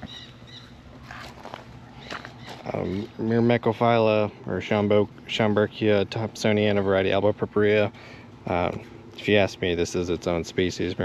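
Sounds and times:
light footsteps: 0:01.0 - 0:03.0.

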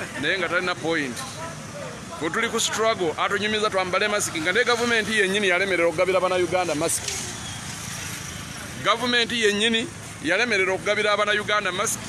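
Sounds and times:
man talking: 0:00.0 - 0:07.1, 0:08.8 - 0:12.0
street traffic noise: 0:00.0 - 0:12.0.

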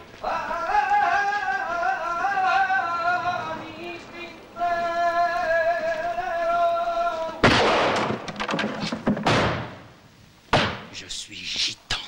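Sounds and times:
sudden loud crash: 0:07.4 - 0:09.9
sharp cracks: 0:07.4 - 0:11.0.

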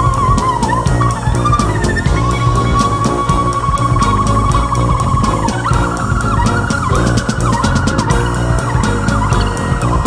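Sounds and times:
progressive rock instrumental: 0:00.0 - 0:10.0
sliding high lead line: 0:00.0 - 0:10.0.

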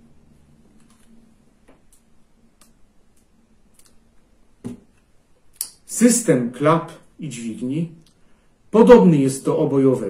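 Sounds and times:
knock: 0:04.6 - 0:04.9.

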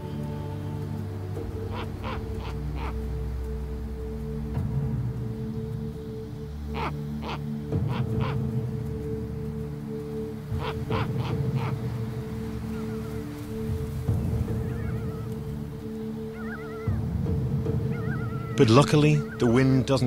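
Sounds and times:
soundtrack of sustained notes: 0:00.0 - 0:20.0
owl harsh alarm calls: 0:01.4 - 0:03.4, 0:06.7 - 0:08.6, 0:10.4 - 0:13.7, 0:14.5 - 0:17.1, 0:17.8 - 0:19.6.

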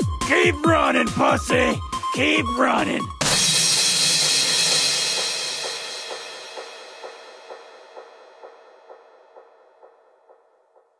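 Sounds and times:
cymbal-like crash: 0:03.2 - 0:09.6.

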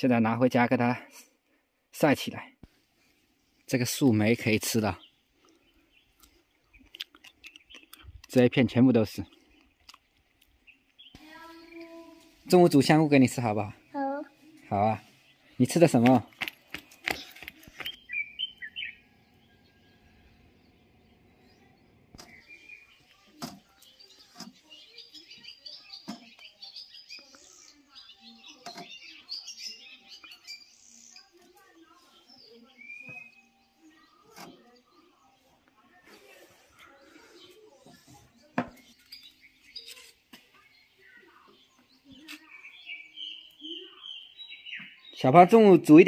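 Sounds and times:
small birds chirping: 0:00.0 - 0:46.0.

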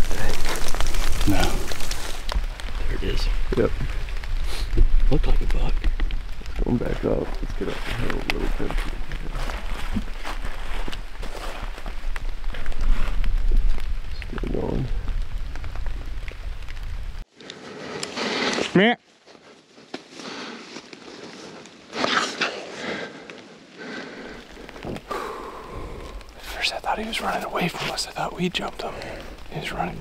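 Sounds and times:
wind rumble on microphone: 0:00.0 - 0:17.2
rain falling on leaves: 0:00.0 - 0:17.3, 0:22.8 - 0:30.0.

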